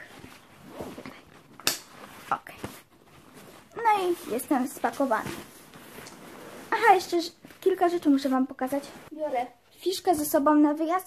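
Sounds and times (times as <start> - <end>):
fabric rustling: 0.0 - 9.6.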